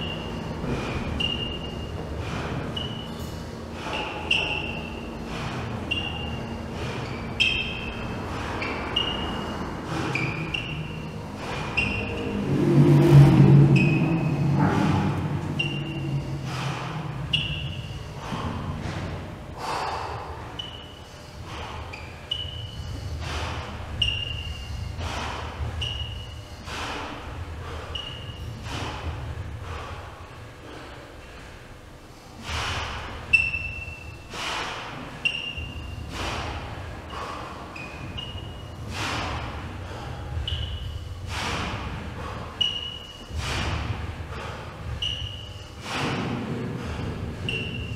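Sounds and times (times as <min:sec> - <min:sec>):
high squeal: 0:00.0 - 0:05.2, 0:05.8 - 0:18.3, 0:20.4 - 0:21.2, 0:21.8 - 0:24.9, 0:25.6 - 0:26.8, 0:27.8 - 0:28.6, 0:33.2 - 0:34.3, 0:35.2 - 0:36.0, 0:36.6 - 0:38.8, 0:40.4 - 0:41.1, 0:42.5 - 0:43.8, 0:44.9 - 0:45.7, 0:47.4 - 0:47.9
hard breathing: 0:00.0 - 0:47.9.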